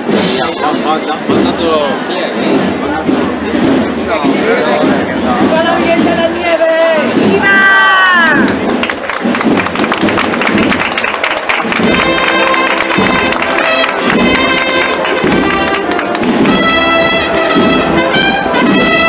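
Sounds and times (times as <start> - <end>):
brass band playing march: 0.0 - 19.0
crowd applauding: 7.4 - 19.0.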